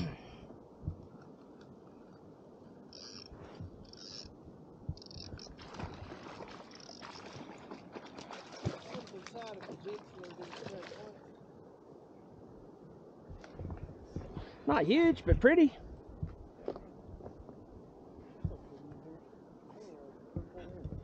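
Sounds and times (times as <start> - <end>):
fish splashing in water: 5.3 - 11.2.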